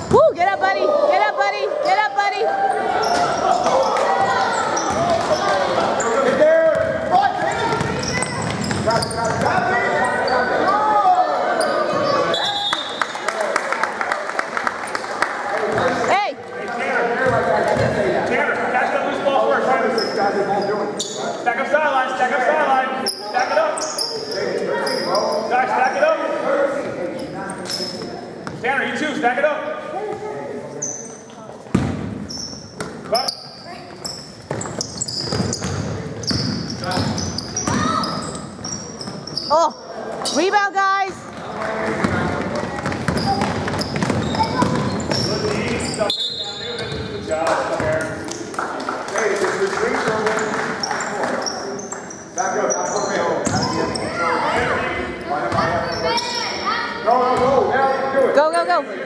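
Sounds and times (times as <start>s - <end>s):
voices echoing in hall: 0.0s - 59.0s
basketball bouncing: 6.3s - 9.7s, 31.7s - 32.2s, 34.4s - 38.0s, 42.0s - 45.8s
shoes squeaking on gym floor: 7.4s - 10.6s, 23.0s - 25.5s, 27.2s - 28.6s, 30.7s - 31.5s, 32.2s - 40.6s, 42.8s - 47.2s, 50.3s - 54.4s.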